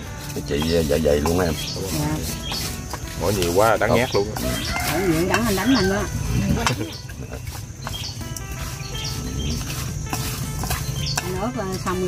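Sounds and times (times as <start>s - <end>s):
chopsticks stirring in metal bowl: 0.0s - 12.0s.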